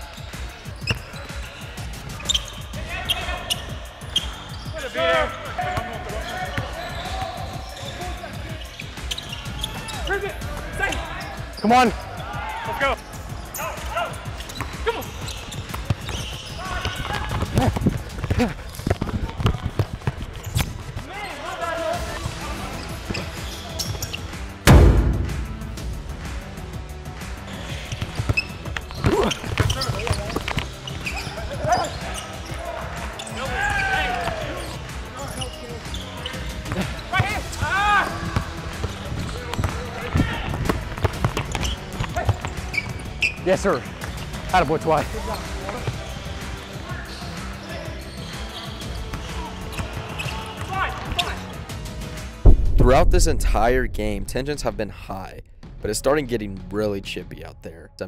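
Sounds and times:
players shouting: 0:04.8 - 0:08.3, 0:31.0 - 0:40.9, 0:49.2 - 0:51.6
background music: 0:19.9 - 0:58.0
loud thump: 0:24.7 - 0:25.9, 0:52.4 - 0:55.0.

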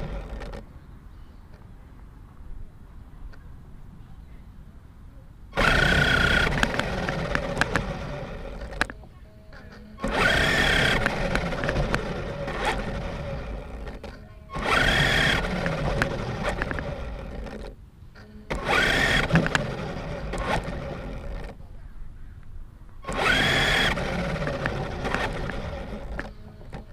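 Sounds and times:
rc car motor whine: 0:00.0 - 0:00.6, 0:05.6 - 0:09.0, 0:09.6 - 0:21.6, 0:23.0 - 0:26.9.

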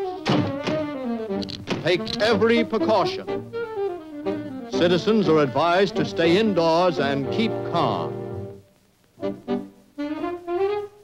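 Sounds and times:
cartoon thunk of window shutting: 0:00.2 - 0:02.0
orchestral music: 0:00.2 - 0:08.5
radio announcer speaking: 0:01.7 - 0:03.4, 0:04.7 - 0:08.2.

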